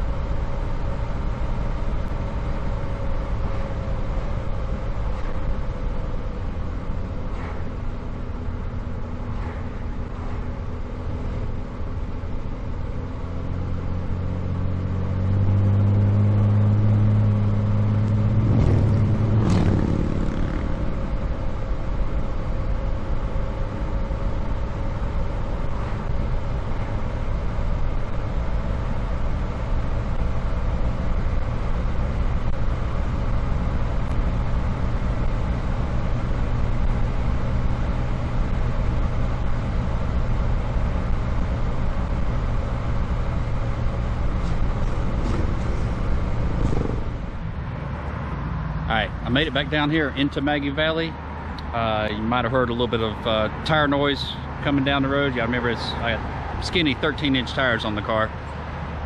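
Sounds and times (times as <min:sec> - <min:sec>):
car engine running: 0:00.0 - 0:59.0
tyre and road noise: 0:00.0 - 0:59.0.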